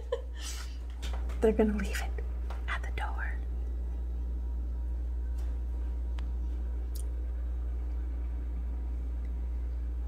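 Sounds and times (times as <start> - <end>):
low hum: 0.0 - 10.0
person whispering: 1.8 - 3.5.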